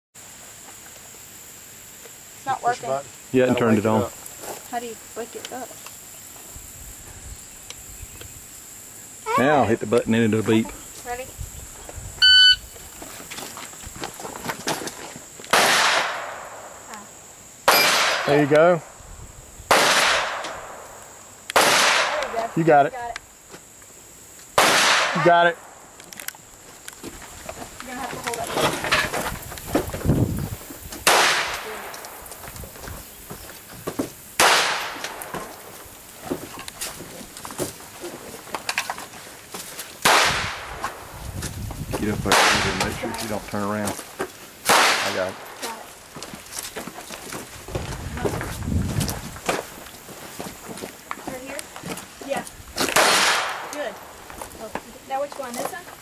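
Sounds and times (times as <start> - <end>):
shot timer beep: 12.2 - 12.6
gunshots: 15.5 - 16.7, 17.6 - 18.5, 19.7 - 20.9, 21.6 - 22.6, 24.6 - 25.8, 31.0 - 32.0, 34.4 - 35.4, 40.0 - 40.7, 42.2 - 43.0, 44.7 - 45.6, 53.0 - 53.7.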